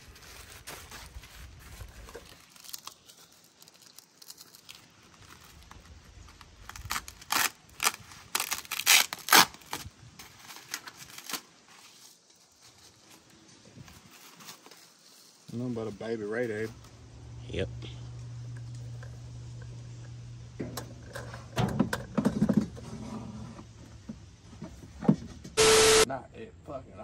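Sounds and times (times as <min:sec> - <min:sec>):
bubble wrap crinkling and crackling: 0:00.0 - 0:15.6.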